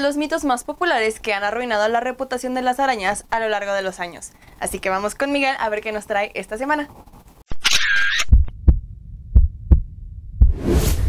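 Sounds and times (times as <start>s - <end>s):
heartbeat thumps: 8.3s - 10.7s.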